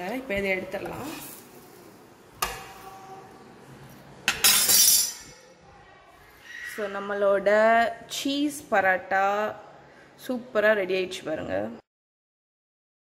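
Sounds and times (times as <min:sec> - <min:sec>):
metal spatula clinking on griddle: 0:04.3 - 0:05.4.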